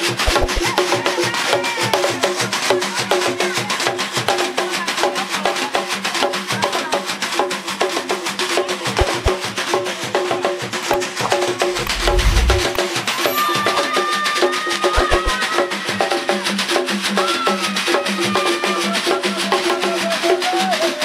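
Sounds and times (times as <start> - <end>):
hand drums fast rhythm: 0.0 - 0.7, 9.0 - 9.3, 15.0 - 15.4
low rumble: 11.7 - 12.8.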